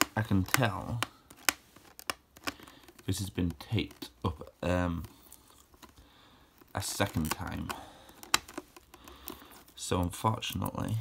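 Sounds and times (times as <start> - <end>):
fingernails scratching at tape: 0.0 - 4.2
sharp plastic clicks: 0.0 - 4.2, 6.6 - 9.6.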